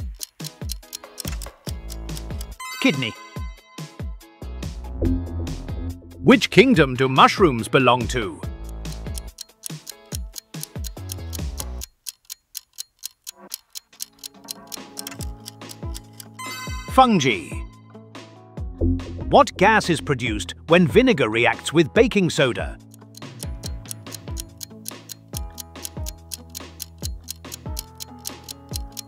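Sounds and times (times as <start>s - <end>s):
countdown timer ticking: 0.0s - 4.0s, 5.0s - 17.8s, 18.7s - 29.0s
electronic background music: 0.0s - 11.8s, 13.4s - 18.0s, 18.6s - 29.0s
electronic music: 1.3s - 4.0s, 4.9s - 6.9s, 14.3s - 17.8s, 18.7s - 20.2s
held synth chords: 5.0s - 6.3s, 16.4s - 17.2s, 18.7s - 19.8s
deep falling bass hits: 18.8s - 19.4s
kick drum beat: 23.5s - 24.5s.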